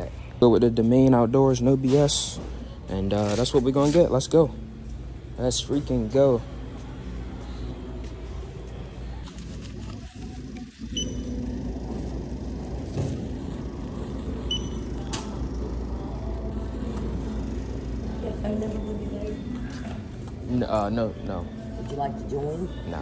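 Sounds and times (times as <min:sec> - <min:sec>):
short high electronic beeps: 0:10.8 - 0:11.5, 0:14.4 - 0:15.1.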